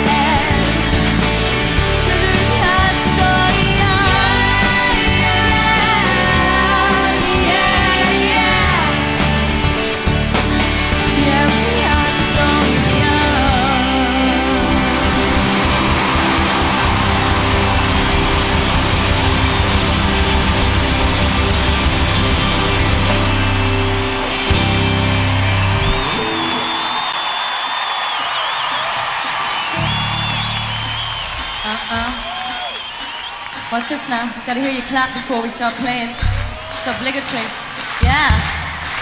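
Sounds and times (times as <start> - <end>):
crowd cheering: 0.0 - 39.0
pop-rock band playing: 0.0 - 39.0
people clapping: 14.2 - 39.0.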